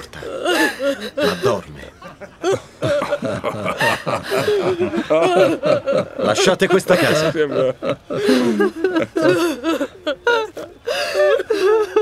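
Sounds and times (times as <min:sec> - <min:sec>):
people laughing mockingly: 0:00.0 - 0:12.0.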